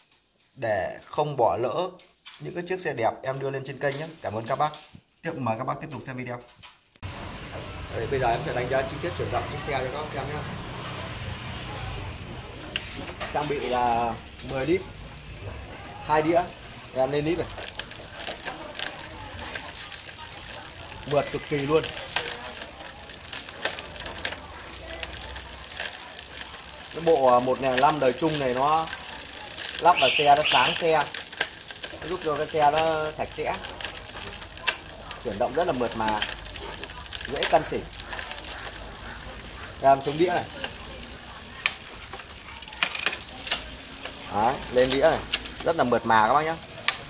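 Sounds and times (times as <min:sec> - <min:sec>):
bicycle chain running: 0:07.0 - 0:47.0
derailleur shifting clicks: 0:12.7 - 0:47.0.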